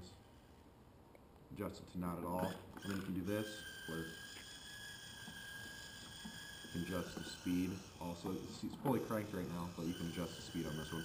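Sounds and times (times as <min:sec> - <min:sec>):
high-pitched servo motor whine: 0:02.5 - 0:11.0.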